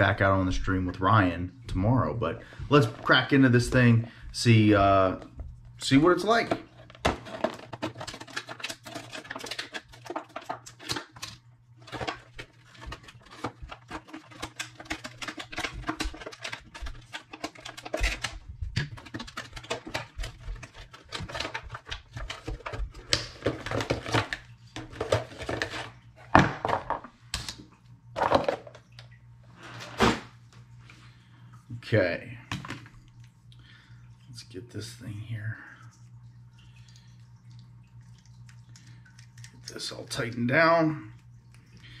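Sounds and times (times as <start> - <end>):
faint low hum: 0.0 - 42.0
packaging rustling and clicks: 6.2 - 25.9.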